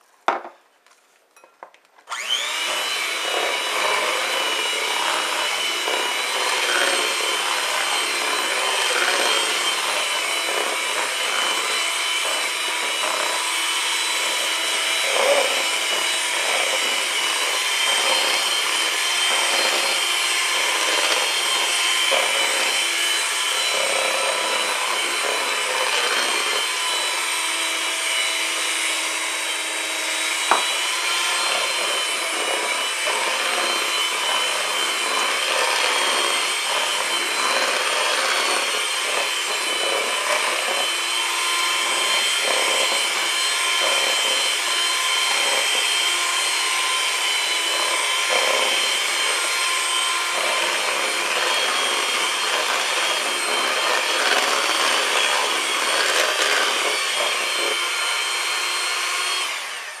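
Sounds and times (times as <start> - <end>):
electric hand mixer whirring: 2.1 - 60.0.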